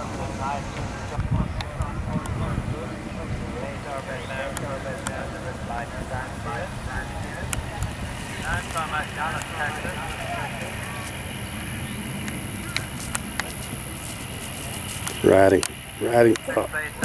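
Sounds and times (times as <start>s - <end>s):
faint distant speech: 0.0s - 17.0s
outdoor background noise: 0.0s - 17.0s.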